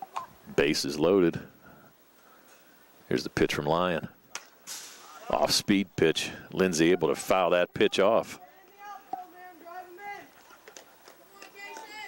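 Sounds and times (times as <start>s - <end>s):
spectators and players calling out: 5.0s - 12.0s.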